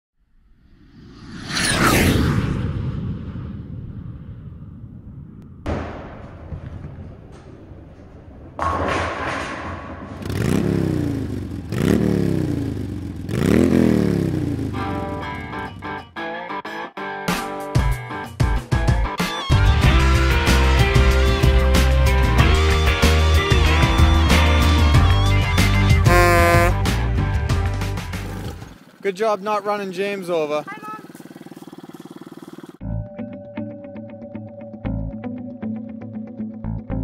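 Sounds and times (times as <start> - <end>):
swoosh effect: 0.4 - 5.4
sharp hits: 5.5 - 11.7.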